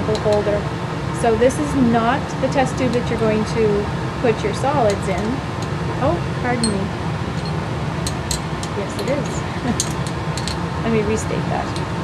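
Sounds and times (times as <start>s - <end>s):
fume hood rushing noise: 0.0s - 12.0s.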